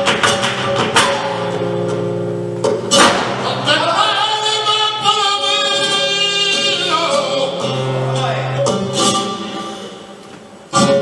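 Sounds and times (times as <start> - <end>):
acoustic guitar low notes: 0.0 - 11.0
man singing melismatic line: 3.4 - 9.8.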